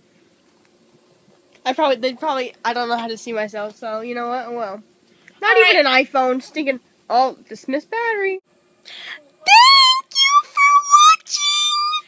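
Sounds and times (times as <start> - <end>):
girl singing in high voice: 9.4 - 12.0.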